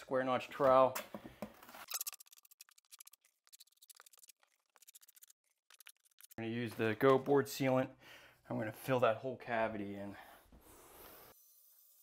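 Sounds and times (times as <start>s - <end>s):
trowel ticking and scraping: 1.8s - 6.5s.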